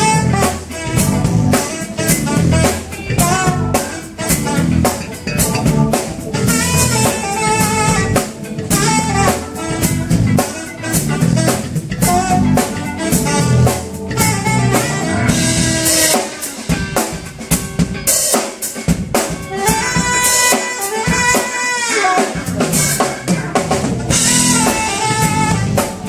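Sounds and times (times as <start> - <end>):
saxophone melody with pitch bends: 0.0 - 16.5, 24.0 - 26.0
drum kit: 0.0 - 26.0
electric guitar: 0.0 - 26.0.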